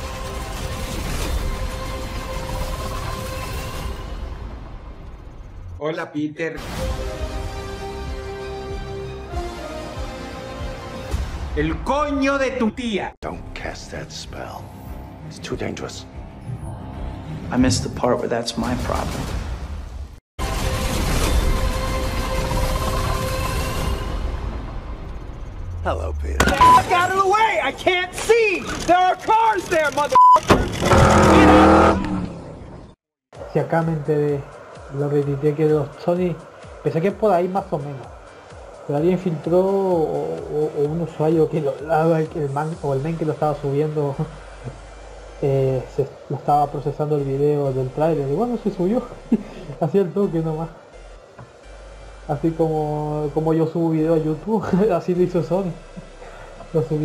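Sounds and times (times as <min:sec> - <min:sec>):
censor bleep: 0:26.4 - 0:26.9, 0:30.2 - 0:30.4.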